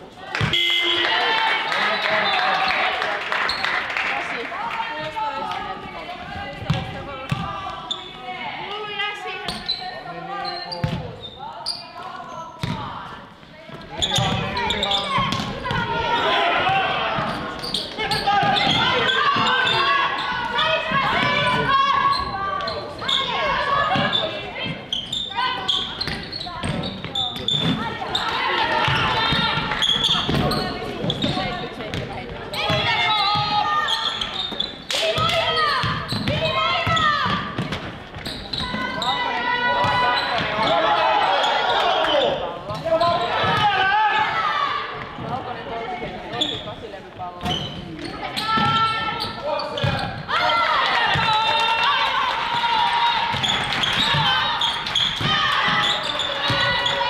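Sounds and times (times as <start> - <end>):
ball bouncing on wooden court: 6.3 - 7.8, 10.8 - 11.2, 12.6 - 13.0, 13.7 - 16.0, 26.0 - 28.0, 28.9 - 33.6, 34.4 - 38.9, 47.4 - 50.3, 51.1 - 51.4, 53.3 - 57.0.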